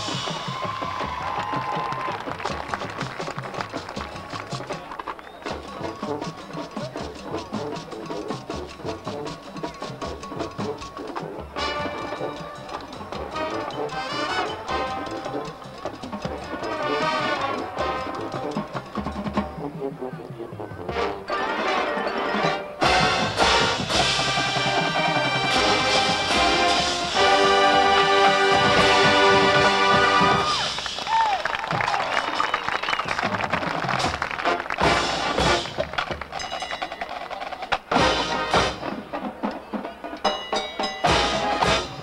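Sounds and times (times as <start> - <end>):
drumline drum strokes: 0.0 - 42.0
brass section held chords: 11.5 - 15.6, 16.3 - 18.8, 19.5 - 30.8, 34.4 - 35.8, 37.9 - 39.0, 41.1 - 42.0.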